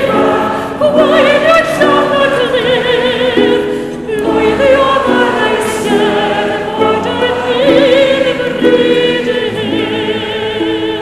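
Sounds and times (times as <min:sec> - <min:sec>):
held accompaniment chords: 0:00.0 - 0:11.0
soprano singing with vibrato: 0:00.0 - 0:11.0.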